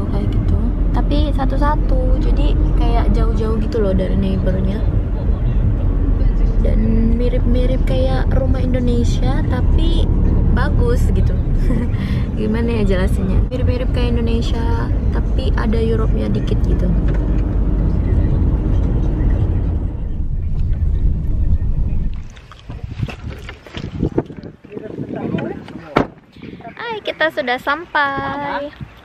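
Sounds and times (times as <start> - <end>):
woman speaking: 0.0 - 4.9, 6.6 - 17.1, 26.6 - 28.8
car road and engine rumble: 0.0 - 29.0.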